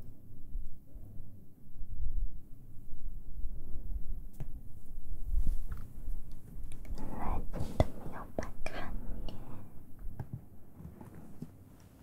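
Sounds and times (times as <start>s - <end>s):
woman whispering: 6.8s - 9.7s.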